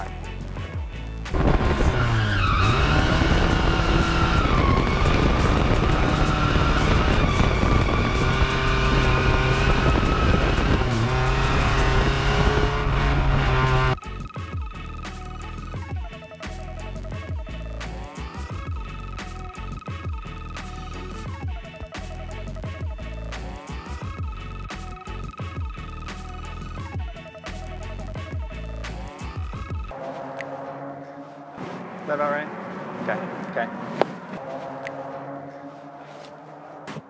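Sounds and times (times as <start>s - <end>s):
background music: 0.0s - 37.0s
car engine at high revs: 1.3s - 14.0s
tyres squealing: 1.4s - 14.0s.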